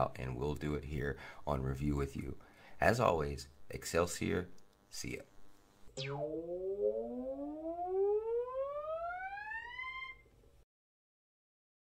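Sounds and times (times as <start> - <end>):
synthesized tone gliding upward: 6.0 - 10.2.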